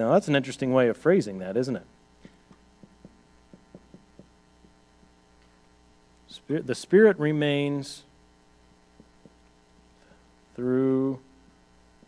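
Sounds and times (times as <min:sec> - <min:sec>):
steady electrical hum: 0:00.0 - 0:12.0
marker writing on a whiteboard: 0:02.4 - 0:04.4.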